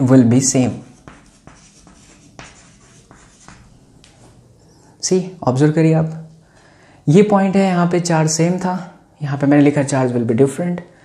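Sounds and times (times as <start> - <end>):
chalk scratching on blackboard: 0.6 - 4.3.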